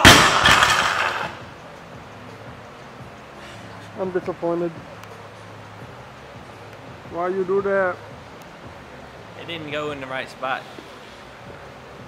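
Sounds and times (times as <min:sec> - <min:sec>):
barbell crashing onto rubber floor: 0:00.0 - 0:01.4.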